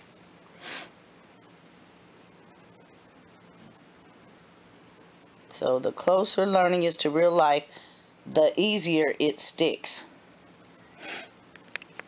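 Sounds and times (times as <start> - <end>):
person sniffing: 0.6 - 1.0, 11.0 - 11.4.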